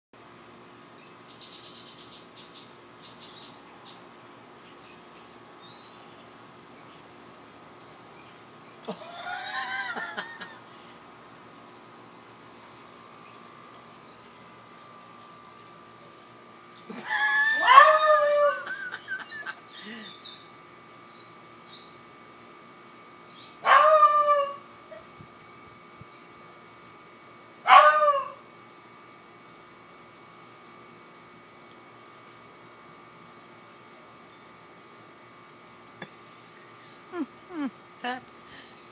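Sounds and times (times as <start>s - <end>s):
birds chirping: 4.7s - 10.0s, 18.8s - 22.0s, 36.6s - 38.9s
dog baying: 17.1s - 18.8s.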